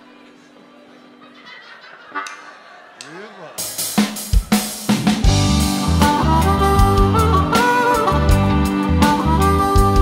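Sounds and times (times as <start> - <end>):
stage and room sound: 0.0 - 10.0.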